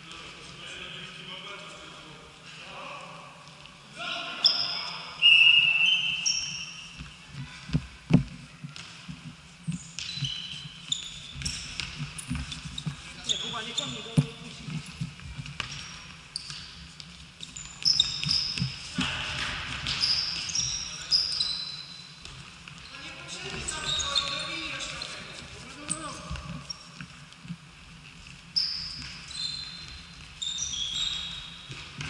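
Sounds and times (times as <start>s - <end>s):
sneakers squeaking on court: 5.8s - 7.2s, 9.6s - 27.1s, 28.5s - 32.0s
ball kicked and bouncing: 7.0s - 13.0s, 14.0s - 20.6s.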